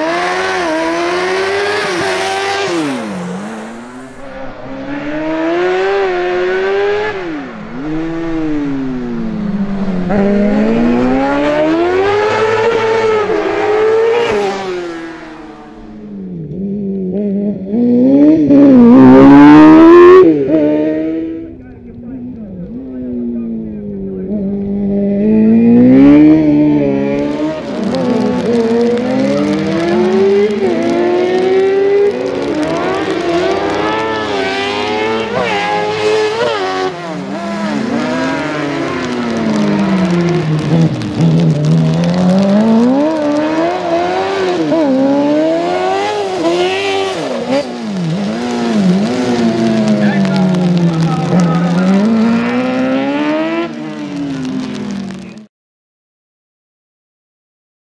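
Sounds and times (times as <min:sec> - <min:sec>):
racing buggy engine revving: 0:00.0 - 0:55.5.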